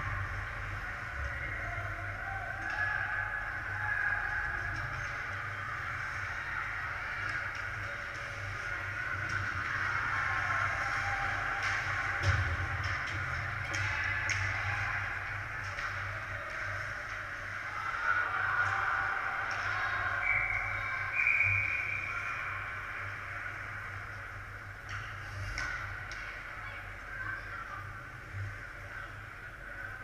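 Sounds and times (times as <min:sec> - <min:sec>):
sticks and puck clicking on ice: 0:07.2 - 0:17.3.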